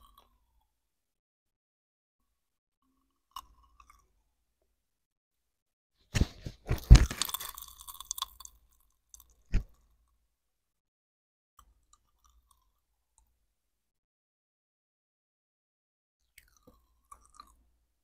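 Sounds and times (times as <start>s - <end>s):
candy crunching in mouth: 6.8s - 8.4s.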